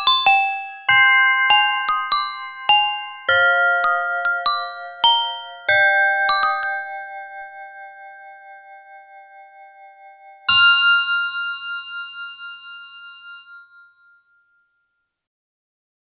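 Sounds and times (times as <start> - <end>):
bell-like keyboard chords: 0.0 - 15.2.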